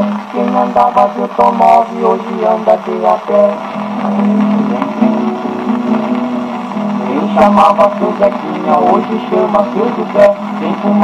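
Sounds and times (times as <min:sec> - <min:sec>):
strummed guitars: 0:00.0 - 0:11.0.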